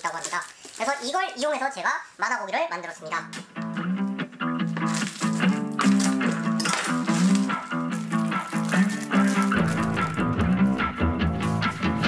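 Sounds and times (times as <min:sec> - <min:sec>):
background music with steady beat: 0:03.3 - 0:12.0
low bass line: 0:09.6 - 0:12.0.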